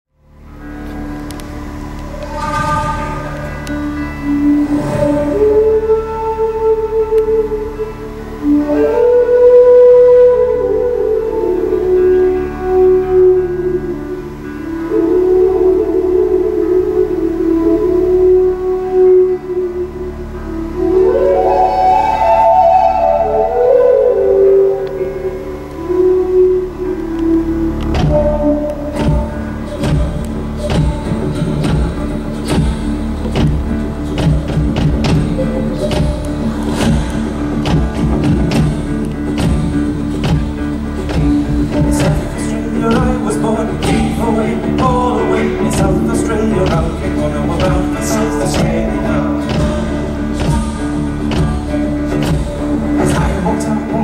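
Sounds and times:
held low bass: 0.1 - 54.0
upright bass: 0.2 - 54.0
sliding flute melody: 0.4 - 54.0
strummed acoustic guitar: 27.6 - 54.0.

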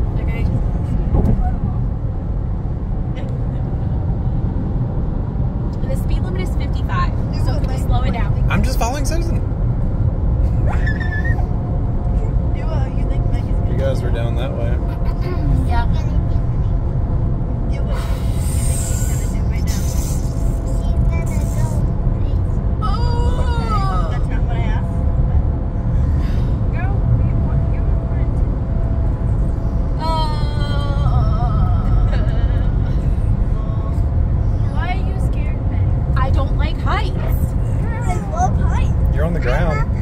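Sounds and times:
car cabin road rumble: 0.0 - 40.0.

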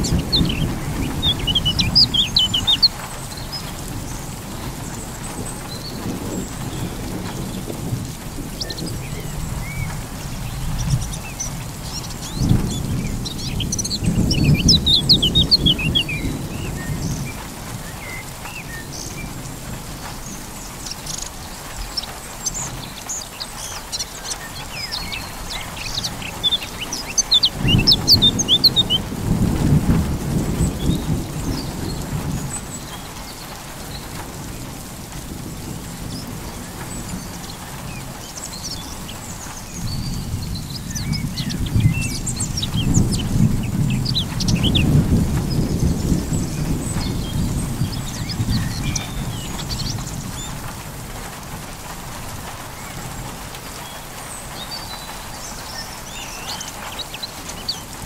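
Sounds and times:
birds chirping: 0.0 - 58.0
steady rain: 0.0 - 58.0
rolls of thunder: 40.2 - 51.2.

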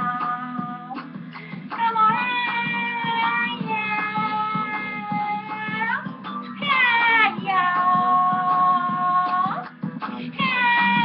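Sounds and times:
music backing track: 0.0 - 11.0
person singing: 0.0 - 11.0.

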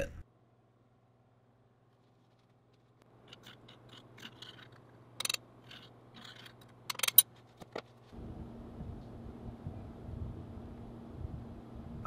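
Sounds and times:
metal scrapes and clicks: 3.1 - 7.2
steady low hum: 8.0 - 12.0
rough low rumble: 8.2 - 12.0.

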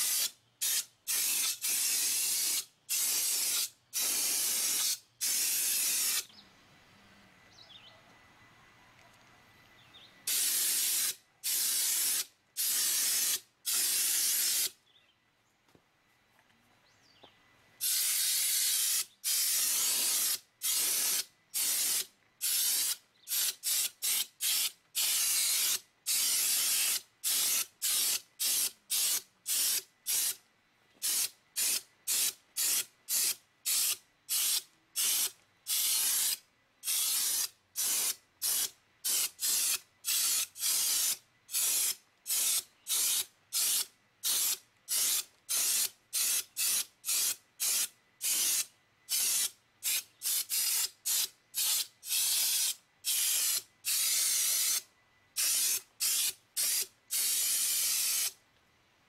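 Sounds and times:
spray gun air hiss bursts: 0.0 - 6.3, 10.3 - 14.8, 17.8 - 30.4, 31.0 - 58.4.

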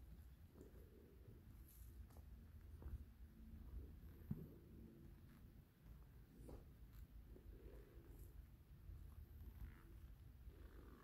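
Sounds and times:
faint low rumble: 0.0 - 11.0.

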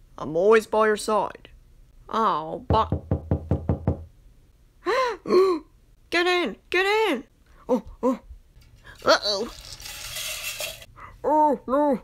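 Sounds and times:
rapid knocking on door: 2.7 - 4.1.

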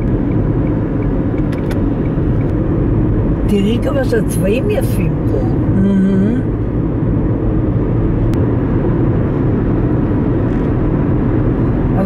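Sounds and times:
car tyres and engine hum: 0.0 - 12.0.

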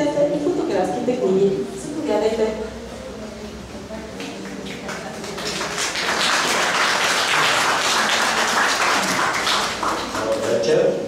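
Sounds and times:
audience applauding: 4.2 - 10.8.

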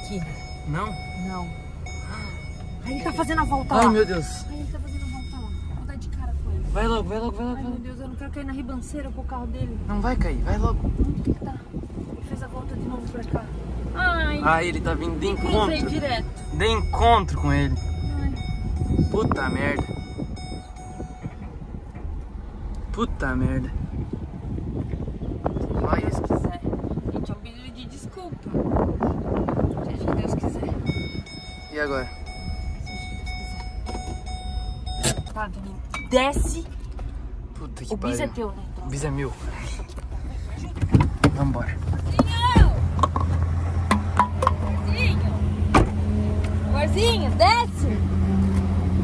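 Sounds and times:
engine and road rumble: 0.0 - 49.0.

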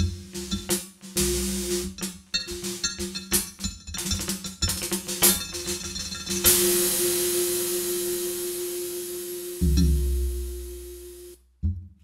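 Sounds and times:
electronic frame drum ringing: 0.0 - 11.3.

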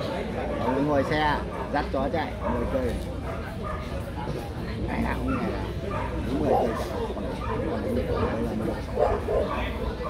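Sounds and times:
crowd chatter: 0.0 - 10.0
dog barking: 0.4 - 4.1, 5.0 - 10.0.

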